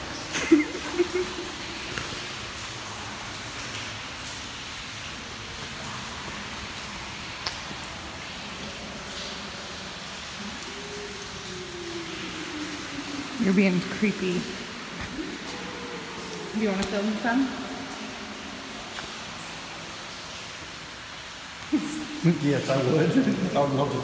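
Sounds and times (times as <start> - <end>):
water dripping and trickling: 0.0 - 24.0
sharp ticks of drips: 0.1 - 24.0.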